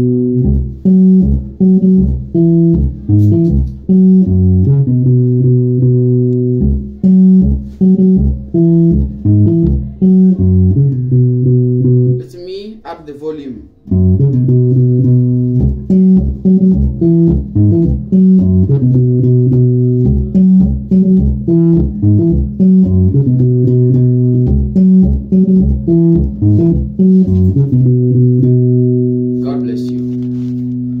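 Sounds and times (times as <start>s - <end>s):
electric bass guitar line: 0.0s - 12.3s, 13.8s - 31.0s.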